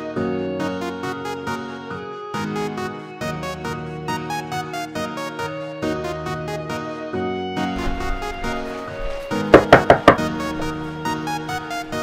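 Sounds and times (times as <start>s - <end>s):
background music: 0.0s - 12.0s
knocking on wooden door: 7.8s - 10.8s.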